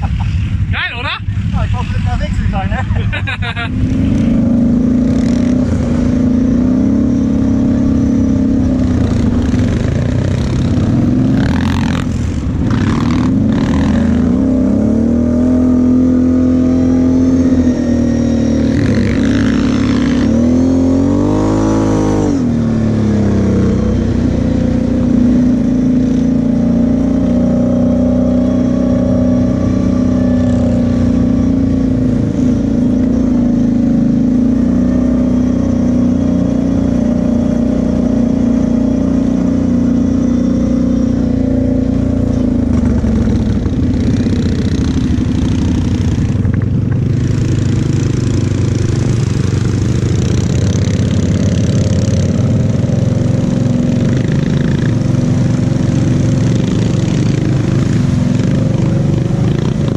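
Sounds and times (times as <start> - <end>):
quad engine running: 0.0 - 59.9.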